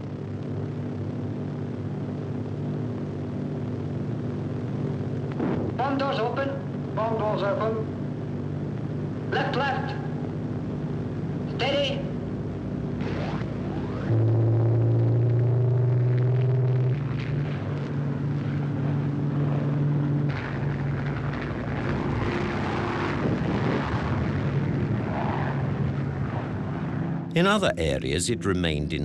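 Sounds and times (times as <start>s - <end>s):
propeller plane engines droning: 0.0s - 5.4s, 6.0s - 29.0s.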